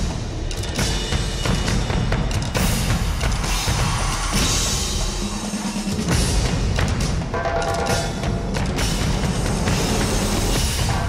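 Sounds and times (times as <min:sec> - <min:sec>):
news theme music with percussion: 0:00.0 - 0:11.0.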